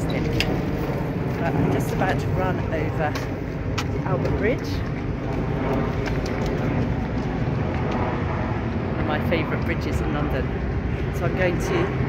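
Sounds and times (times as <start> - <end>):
road traffic rumble on bridge: 0.0 - 12.0.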